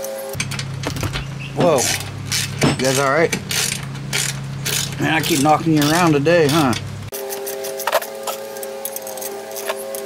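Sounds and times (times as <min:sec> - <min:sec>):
steady hum: 0:00.0 - 0:10.0
hand tools clicking on metal: 0:01.6 - 0:10.0.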